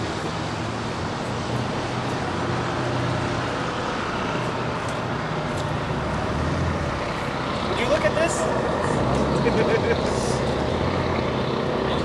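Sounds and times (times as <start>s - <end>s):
traffic noise: 0.0s - 12.0s
vehicle engine humming: 0.0s - 12.0s.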